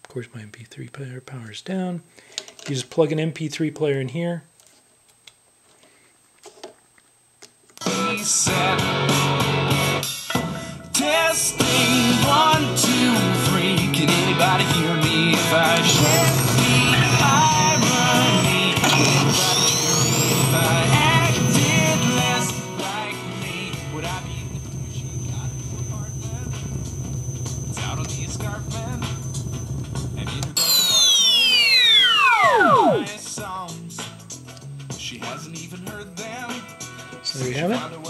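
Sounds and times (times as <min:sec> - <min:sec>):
music through small speaker: 0:07.8 - 0:31.2, 0:32.2 - 0:38.0
electronic power-down sweep: 0:14.4 - 0:33.2
low electrical hum: 0:15.6 - 0:33.2.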